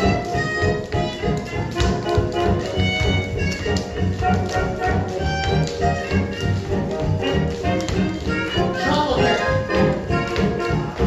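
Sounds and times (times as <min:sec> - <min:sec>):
swing jazz with horns and strings: 0:00.0 - 0:11.0.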